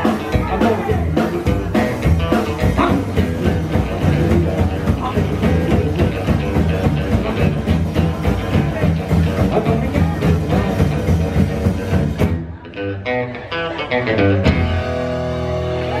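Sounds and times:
drums: 0:00.0 - 0:16.0
electric guitar: 0:00.0 - 0:16.0
upright bass: 0:00.0 - 0:16.0.

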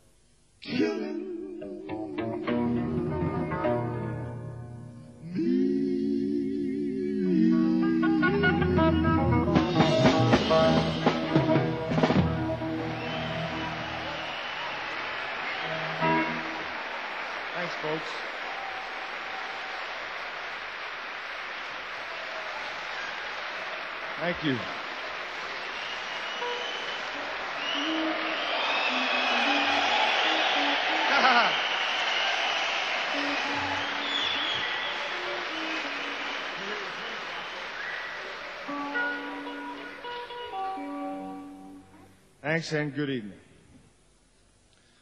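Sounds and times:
audience applauding and cheering: 0:09.7 - 0:40.7
whistles: 0:12.6 - 0:16.6, 0:25.4 - 0:39.2.

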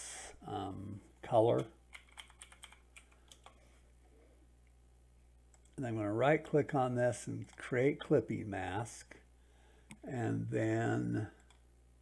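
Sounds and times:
typing on computer keyboard: 0:01.6 - 0:03.6.

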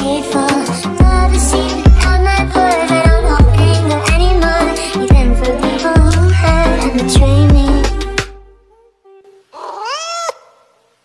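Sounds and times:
cat-like meow: 0:09.6 - 0:10.4.

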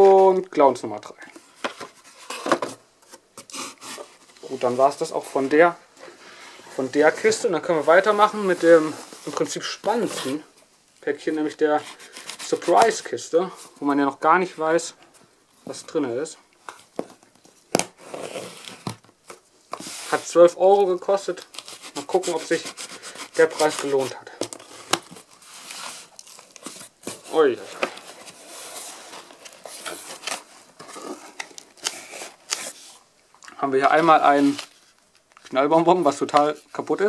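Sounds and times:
cardboard rubbing: 0:01.4 - 0:05.1, 0:17.9 - 0:19.0, 0:21.4 - 0:33.0.

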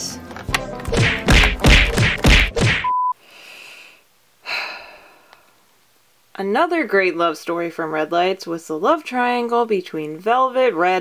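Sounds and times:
heavy whacks and thuds: 0:00.8 - 0:02.9
short steady beep: 0:02.8 - 0:03.2.

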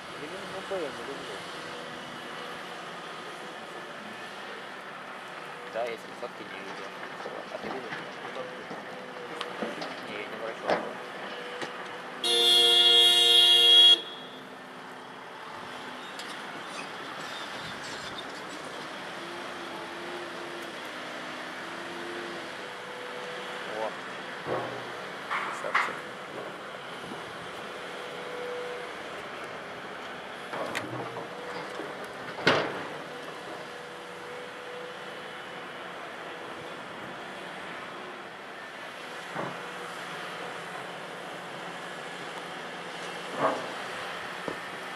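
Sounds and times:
heavy machine horn: 0:12.2 - 0:14.4
excavator diesel engine running: 0:14.0 - 0:44.9.

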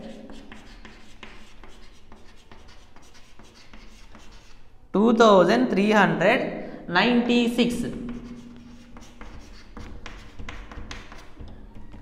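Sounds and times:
chalk scratching on chalkboard: 0:00.0 - 0:04.7, 0:08.0 - 0:12.0.

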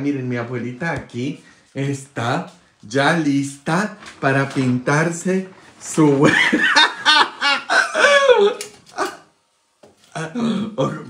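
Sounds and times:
man cackling laughter: 0:06.3 - 0:09.3.

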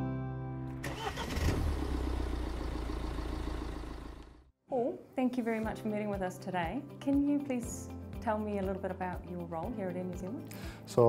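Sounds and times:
car engine starting and idling: 0:00.7 - 0:04.5.

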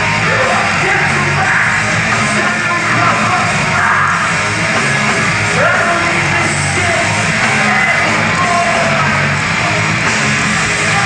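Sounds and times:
heavy metal band playing: 0:00.0 - 0:11.0
singer yelling into microphone: 0:00.2 - 0:04.4, 0:05.5 - 0:09.8, 0:10.6 - 0:11.0.

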